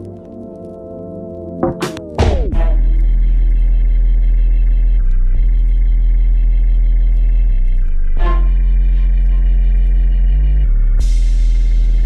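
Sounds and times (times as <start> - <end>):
organ chords: 0.0 - 12.0
deep bass drone: 2.0 - 12.0.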